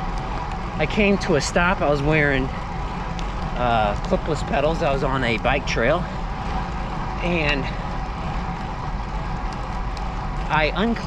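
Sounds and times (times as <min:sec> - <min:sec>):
bicycle tyre noise on pavement: 0:00.0 - 0:11.0.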